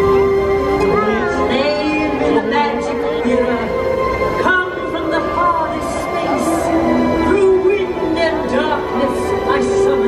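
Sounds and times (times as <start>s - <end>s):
sustained orchestral chords: 0.0s - 10.0s.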